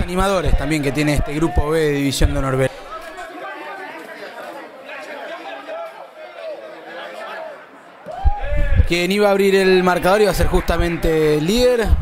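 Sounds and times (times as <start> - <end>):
players and onlookers calling: 0.0 - 12.0.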